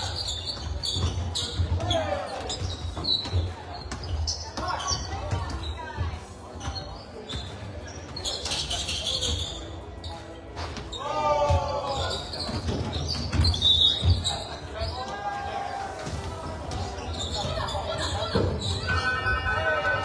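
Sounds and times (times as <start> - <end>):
voices and calls in a gym: 0.0 - 20.0.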